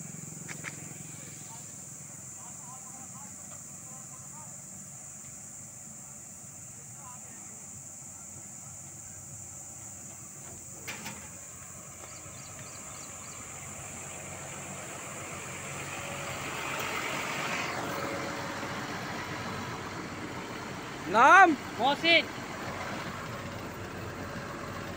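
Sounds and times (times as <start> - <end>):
truck diesel engine running: 0.0 - 24.9.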